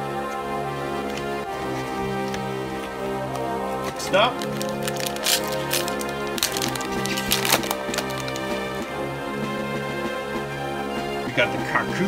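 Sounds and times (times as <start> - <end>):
background music: 0.0 - 12.0
foil pack tearing and crinkling: 4.3 - 8.7.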